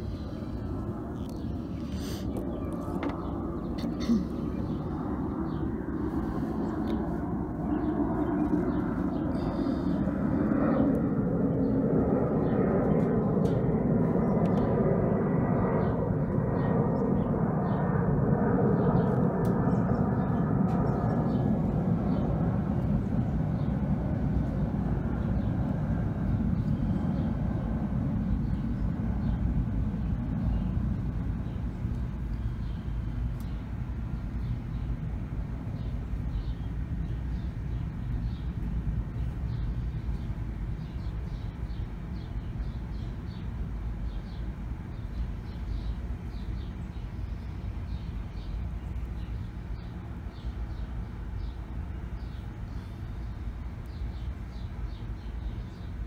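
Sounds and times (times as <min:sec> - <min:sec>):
low steady rumble: 0:00.0 - 0:56.0.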